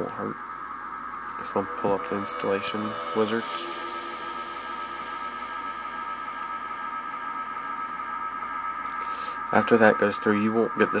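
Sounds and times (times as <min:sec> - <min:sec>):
constant high-pitched tone: 0:01.2 - 0:11.0.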